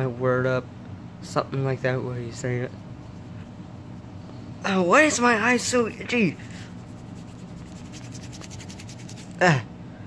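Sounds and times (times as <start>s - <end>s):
fingers rubbing eyes: 5.0s - 9.4s.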